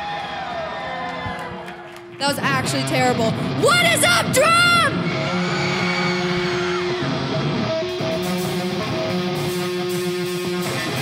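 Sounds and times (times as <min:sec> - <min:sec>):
electric guitar noodling: 0:02.2 - 0:11.0.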